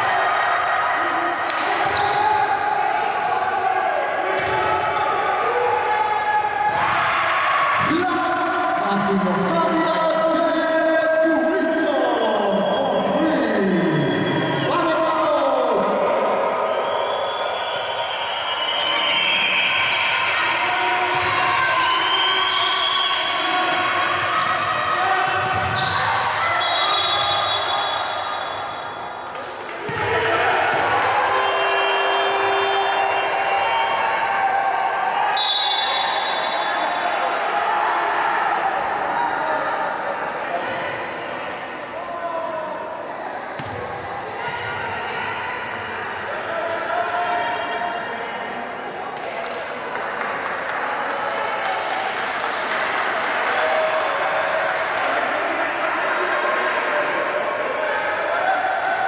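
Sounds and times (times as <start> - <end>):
basketball bouncing on court: 4.4 - 4.7, 25.2 - 26.3, 43.6 - 44.6.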